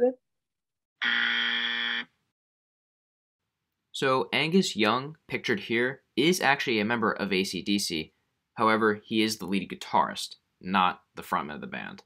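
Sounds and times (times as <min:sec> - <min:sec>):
wrong-answer buzzer: 0:01.0 - 0:02.1.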